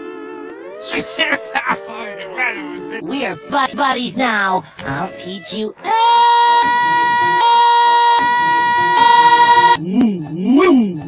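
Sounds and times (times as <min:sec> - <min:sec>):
voice with wavering pitch: 0:09.8 - 0:11.0.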